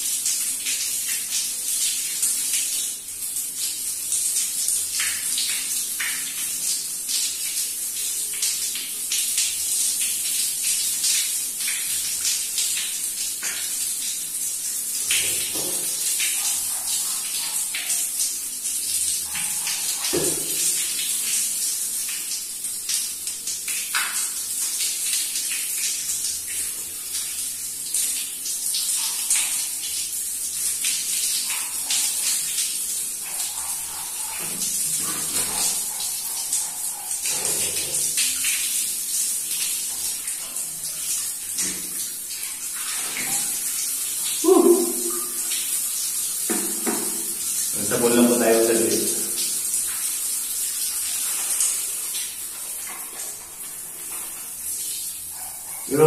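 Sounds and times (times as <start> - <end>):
water running and splashing: 0.0 - 56.0.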